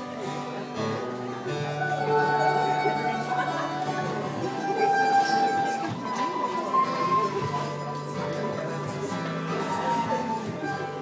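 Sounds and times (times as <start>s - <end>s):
folk band playing: 0.0s - 11.0s
strummed acoustic guitar: 0.0s - 11.0s.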